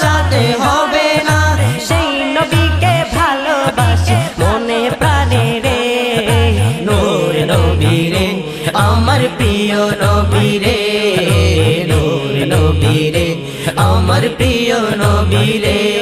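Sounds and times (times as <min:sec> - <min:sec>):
voices chanting and humming: 0:00.0 - 0:16.0.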